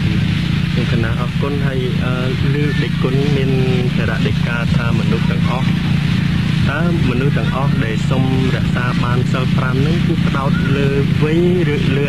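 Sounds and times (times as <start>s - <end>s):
steady low hum: 0.0s - 12.0s
man speaking: 0.8s - 12.0s.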